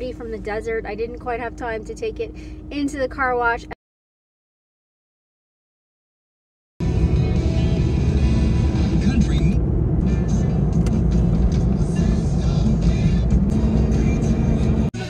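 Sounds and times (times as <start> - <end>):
car road and engine rumble: 0.0 - 3.8, 6.8 - 15.0.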